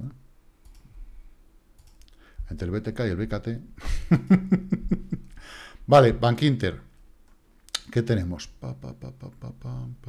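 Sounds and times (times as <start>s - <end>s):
faint computer mouse clicks: 0.6s - 0.9s, 1.8s - 2.2s.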